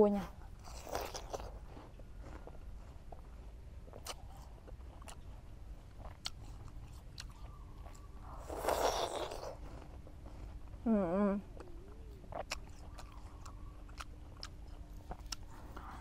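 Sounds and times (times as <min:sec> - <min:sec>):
apple crunching while chewed: 0:00.3 - 0:16.0.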